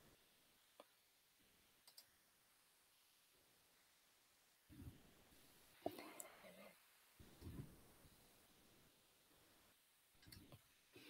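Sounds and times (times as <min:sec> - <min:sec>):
faint whispered speech: 0:05.8 - 0:06.8.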